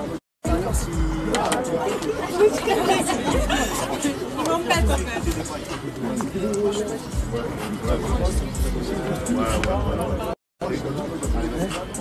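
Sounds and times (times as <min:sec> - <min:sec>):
voices talking over one another: 0:00.0 - 0:12.0.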